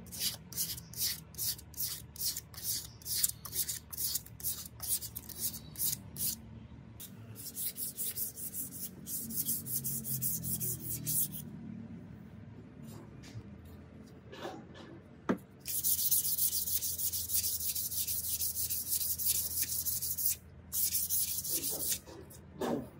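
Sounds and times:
sandpaper sanding wood: 0.0 - 6.4, 7.4 - 11.4, 15.7 - 22.0.

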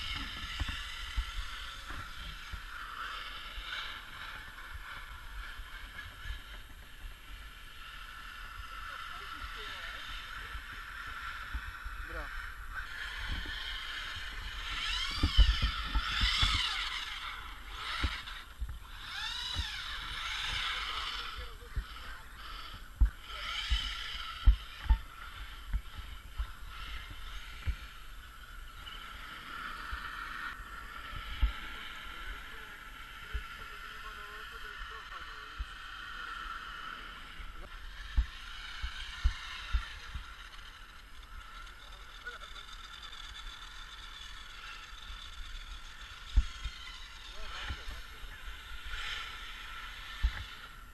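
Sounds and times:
electric motors whining: 0.0 - 50.9
rc trucks driving on ice: 0.0 - 50.9.

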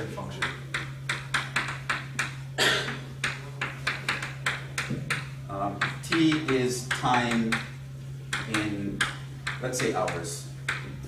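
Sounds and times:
chalk tapping on a chalkboard: 0.4 - 11.0.

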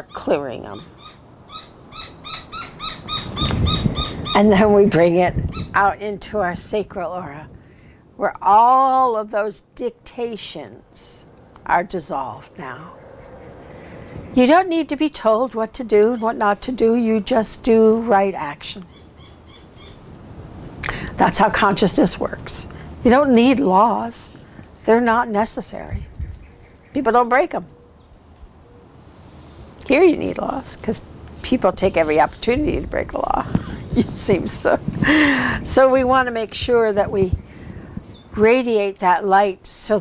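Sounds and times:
faint low rumble: 10.1 - 15.4.

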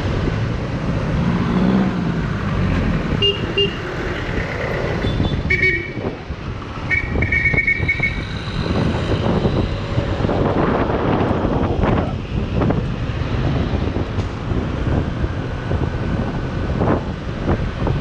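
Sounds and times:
road and wind noise: 0.0 - 18.0
vehicle horn toots: 3.2 - 3.8, 5.0 - 6.1, 6.9 - 8.4.

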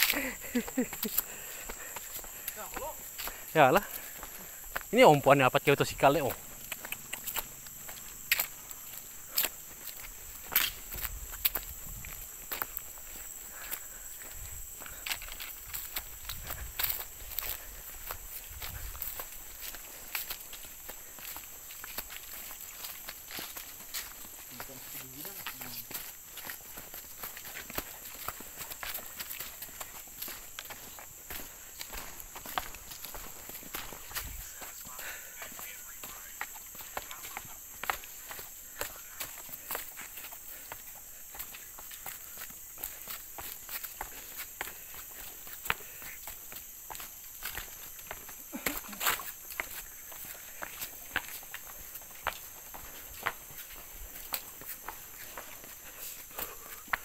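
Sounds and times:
footsteps on dry leaves: 0.0 - 57.0.

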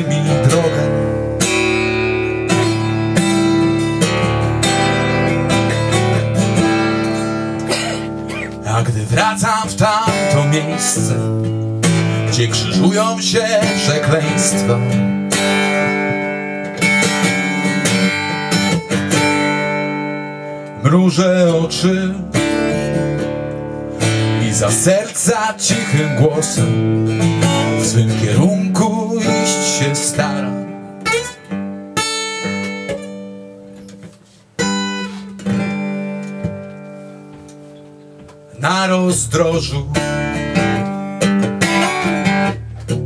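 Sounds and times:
acoustic guitar chords strummed: 0.0 - 43.0.

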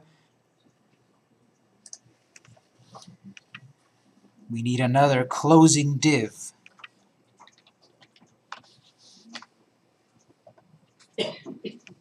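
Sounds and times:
computer keys and mouse clicking: 1.8 - 3.7, 6.6 - 8.8.

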